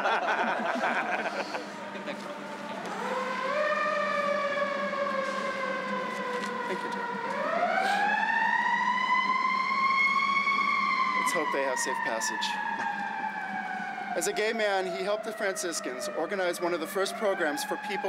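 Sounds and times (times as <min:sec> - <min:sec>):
emergency vehicle siren wailing: 0:00.0 - 0:18.0.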